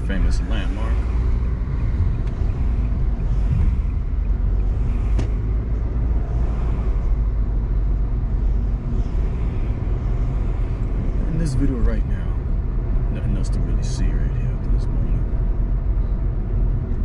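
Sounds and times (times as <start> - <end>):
car engine and tyre noise: 0.0 - 17.0.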